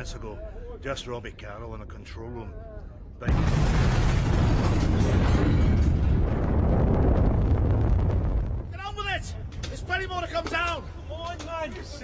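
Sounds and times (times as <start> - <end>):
explosion rumble: 3.2 - 10.3.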